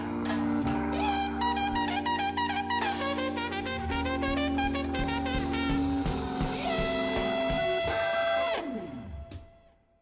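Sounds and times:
organ: 0:00.0 - 0:09.4
drums: 0:00.0 - 0:09.8
muted trumpet: 0:01.0 - 0:08.8.

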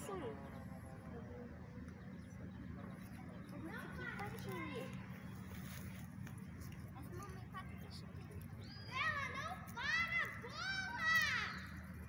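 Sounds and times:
children chattering: 0:00.0 - 0:12.0
steady low hum: 0:00.0 - 0:12.0.

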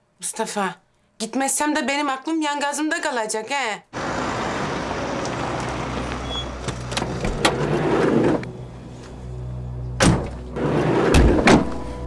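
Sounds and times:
police car engine running: 0:04.0 - 0:10.6
low music drone: 0:07.9 - 0:12.0
car door slamming: 0:10.0 - 0:10.4, 0:11.0 - 0:11.8.

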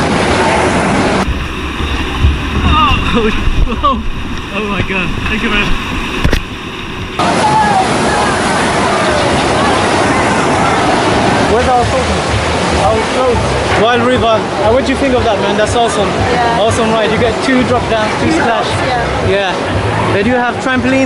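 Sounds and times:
water rushing in channel: 0:00.0 - 0:21.0
voices talking: 0:07.2 - 0:21.0.

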